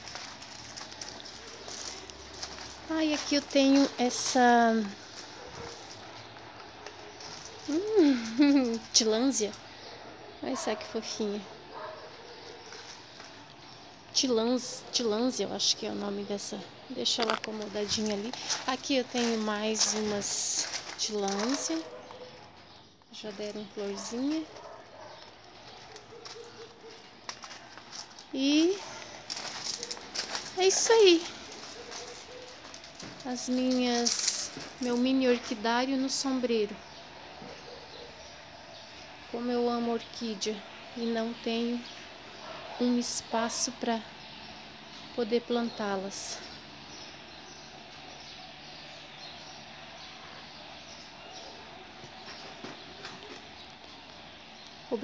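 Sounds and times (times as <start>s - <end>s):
faint footsteps: 0.0s - 10.0s, 10.8s - 14.1s, 16.8s - 39.4s, 46.4s - 54.8s.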